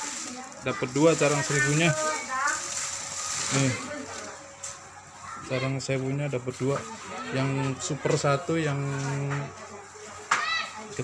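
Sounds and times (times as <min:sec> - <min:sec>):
dry twigs rustling on microphone: 0:00.0 - 0:04.9.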